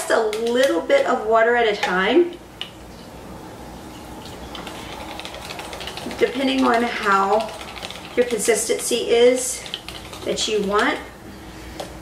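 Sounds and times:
wire whisk clicking on bowl: 5.2s - 10.9s.

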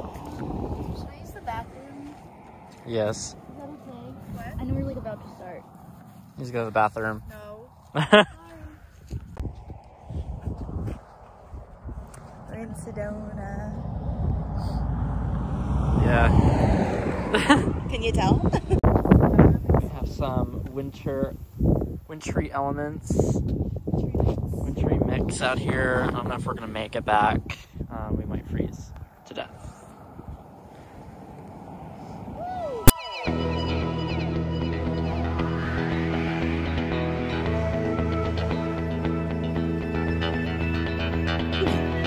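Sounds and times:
vehicle passing on road: 0.0s - 20.2s, 28.1s - 42.0s
wind on microphone: 0.0s - 33.0s.

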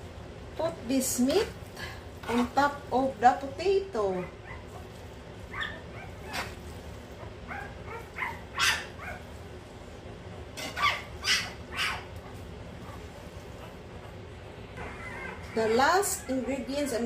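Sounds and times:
puppies whining yips: 4.2s - 9.3s, 10.6s - 12.1s, 14.8s - 17.0s.

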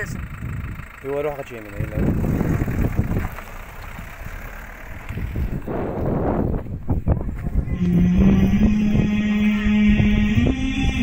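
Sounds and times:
wind rumble: 0.0s - 1.0s, 1.8s - 11.0s
small car engine running: 0.0s - 11.0s
background music held note: 7.7s - 11.0s.

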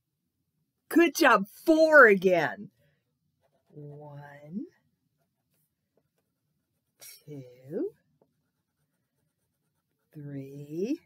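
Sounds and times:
wax crayon scratching on paper: 8.1s - 10.4s.

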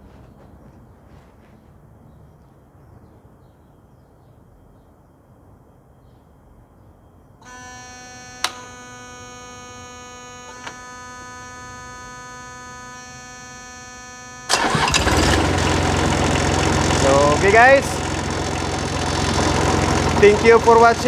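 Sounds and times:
warning buzzer tone: 7.4s - 15.2s
short clicks: 8.4s - 8.8s
diesel engine cranking and running: 8.4s - 21.0s.

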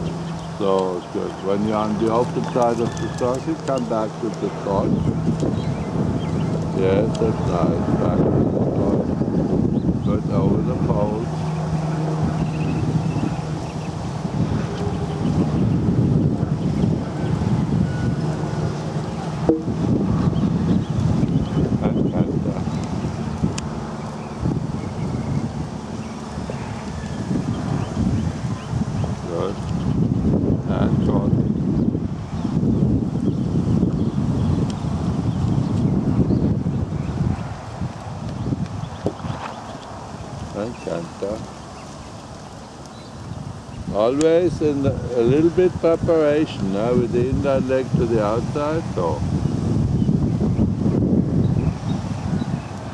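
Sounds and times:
wind buffeting microphone: 0.0s - 52.9s.

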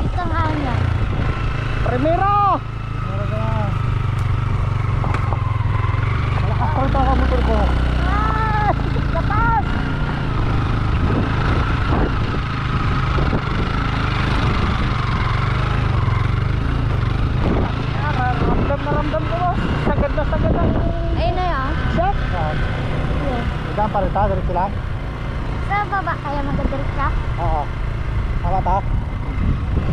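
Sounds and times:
motorcycle engine under load: 0.0s - 20.6s
wind rushing on microphone: 10.2s - 15.3s, 17.0s - 22.2s, 28.4s - 29.9s.

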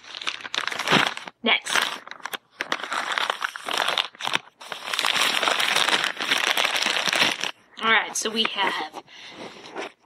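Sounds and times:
plastic crinkling: 0.0s - 10.0s.

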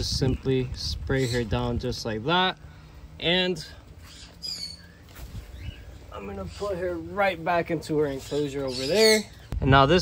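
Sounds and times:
bird chirping: 4.0s - 9.6s.

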